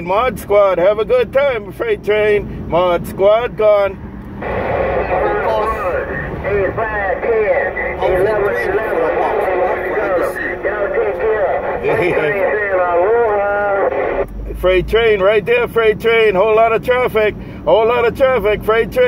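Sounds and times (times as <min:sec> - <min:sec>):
garbled radio voices: 0:00.0 - 0:19.0.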